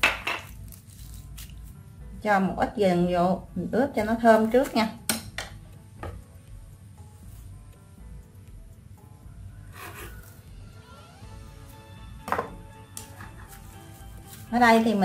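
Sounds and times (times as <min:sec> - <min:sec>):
faint background music: 0:00.0 - 0:15.0
knife knocking on cutting board: 0:12.2 - 0:12.6.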